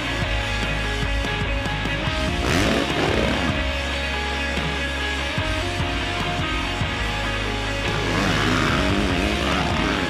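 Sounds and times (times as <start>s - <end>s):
dirt bike engine revving: 0.0s - 10.0s
rock guitar music: 0.0s - 10.0s.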